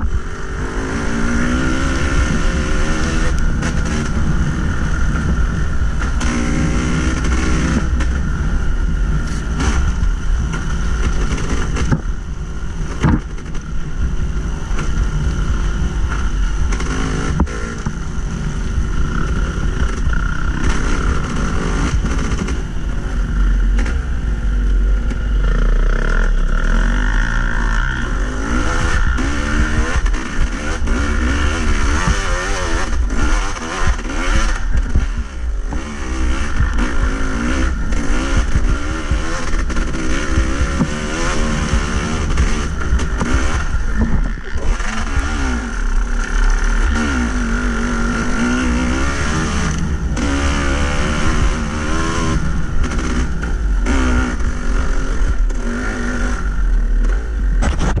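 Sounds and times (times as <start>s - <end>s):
dirt bike engine revving: 0.0s - 58.0s.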